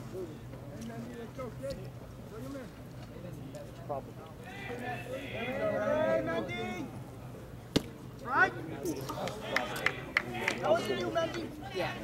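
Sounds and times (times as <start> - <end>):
crowd shouting: 4.4 - 6.9
baseball bat crack: 7.7 - 8.1.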